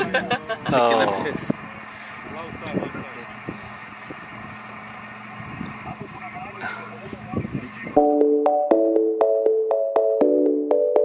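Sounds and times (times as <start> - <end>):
vehicle engine humming: 0.0 - 10.8
plucked keyboard melody: 7.7 - 11.0.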